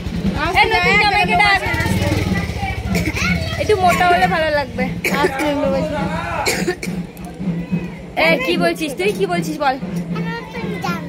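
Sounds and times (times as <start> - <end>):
people talking: 0.4 - 11.0
short cough: 6.4 - 7.0.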